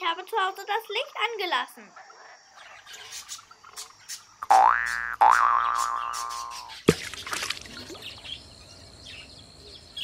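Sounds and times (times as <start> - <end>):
cartoon spring boing: 4.4 - 6.7.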